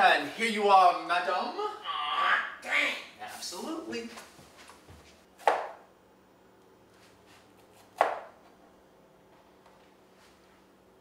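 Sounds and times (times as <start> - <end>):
sharp knife chop on board: 5.4 - 5.8, 8.0 - 8.3.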